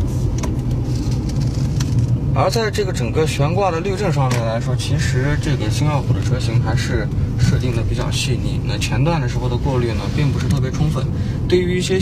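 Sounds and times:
car engine humming: 0:00.0 - 0:12.0
road noise: 0:00.0 - 0:12.0.

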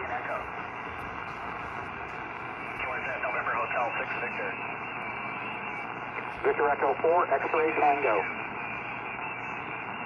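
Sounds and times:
shortwave radio hiss: 0:00.0 - 0:09.4
radio voice: 0:02.8 - 0:04.6, 0:06.2 - 0:08.3.

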